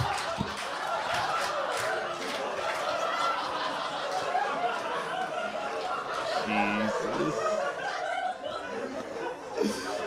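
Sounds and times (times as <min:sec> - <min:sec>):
audience laughing: 0:00.0 - 0:10.0.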